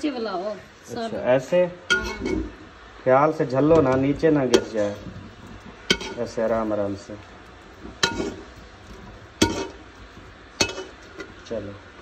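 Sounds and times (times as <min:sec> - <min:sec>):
metal spoon clinking on steel pan: 0:01.9 - 0:02.4, 0:03.8 - 0:05.0, 0:05.9 - 0:06.4, 0:08.0 - 0:08.5, 0:09.4 - 0:09.8, 0:10.6 - 0:11.3.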